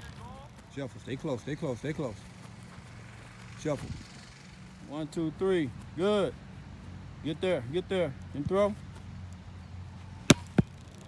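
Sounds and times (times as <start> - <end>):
football slapping into hands: 10.3 - 10.8.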